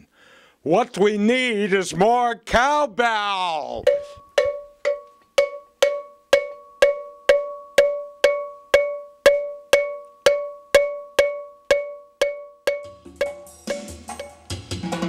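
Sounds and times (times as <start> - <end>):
cowbell struck in steady beat: 3.8 - 15.0.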